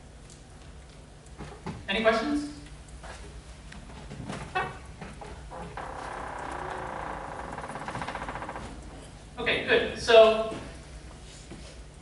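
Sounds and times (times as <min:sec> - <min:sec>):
mechanical hum with fast flutter: 0:00.0 - 0:12.0.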